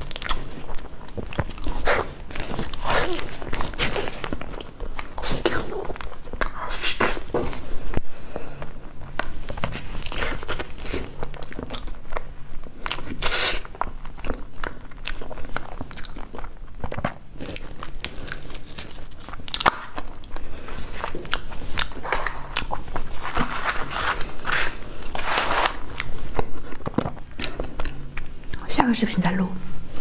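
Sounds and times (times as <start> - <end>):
close-miked chewing: 0.0 - 28.6.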